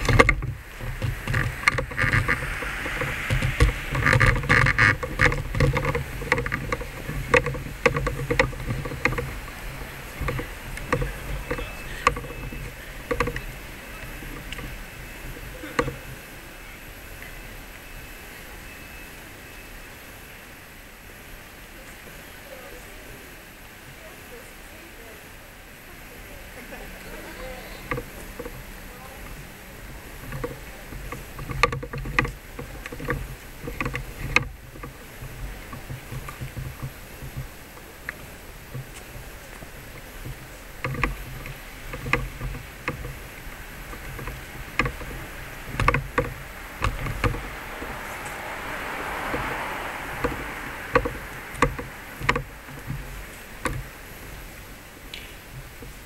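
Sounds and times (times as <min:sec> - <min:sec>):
footsteps on pavement: 0:00.0 - 0:16.2, 0:27.1 - 0:56.0
wind rumble: 0:00.0 - 0:56.0.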